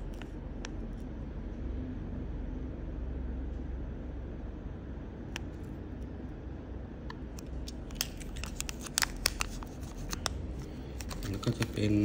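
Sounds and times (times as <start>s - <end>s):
low steady hum: 0.0s - 12.0s
small objects clicking and scratching: 7.6s - 11.7s
man speaking: 11.2s - 12.0s.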